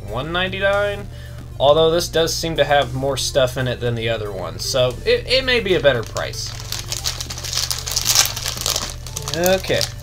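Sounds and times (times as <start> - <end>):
plastic packaging crinkling: 5.8 - 10.0.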